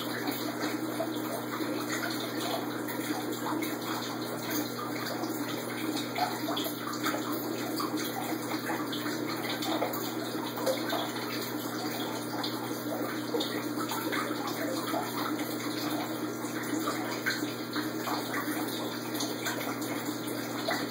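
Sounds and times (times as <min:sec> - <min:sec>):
water trickling and splashing: 0:00.0 - 0:20.9.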